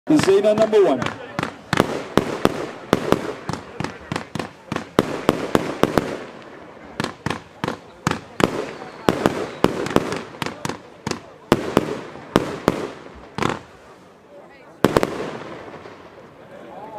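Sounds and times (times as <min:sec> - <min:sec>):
firework shots popping: 0:00.1 - 0:13.8, 0:14.8 - 0:16.2.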